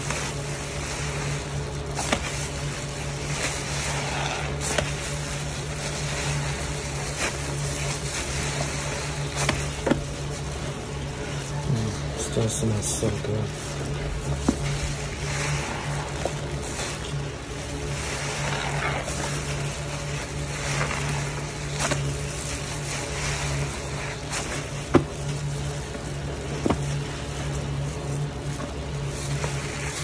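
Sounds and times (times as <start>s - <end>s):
sponge squelching in suds: 0.0s - 30.0s.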